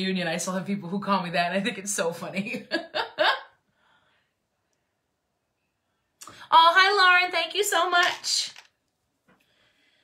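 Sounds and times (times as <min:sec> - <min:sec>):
woman laughing: 0:02.4 - 0:03.6.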